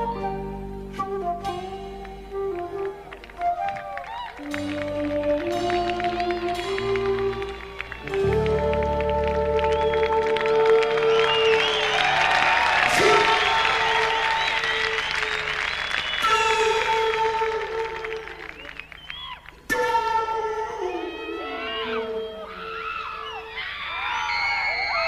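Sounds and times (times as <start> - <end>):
live rock band playing: 0.0 - 11.4
flute: 0.0 - 25.0
audience cheering and applauding: 1.8 - 25.0.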